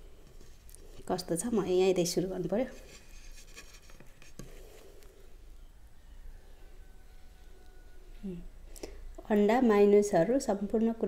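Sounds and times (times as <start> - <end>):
light scratchy rustling: 0.1 - 4.9.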